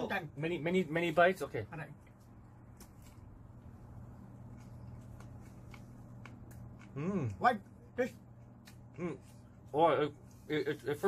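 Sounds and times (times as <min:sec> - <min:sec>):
steady low hum: 0:00.0 - 0:11.0
crunchy chewing clicks: 0:04.2 - 0:09.0.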